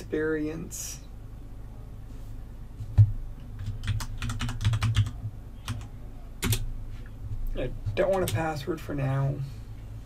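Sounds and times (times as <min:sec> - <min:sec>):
typing on computer keyboard: 0:03.6 - 0:06.7, 0:07.8 - 0:08.4.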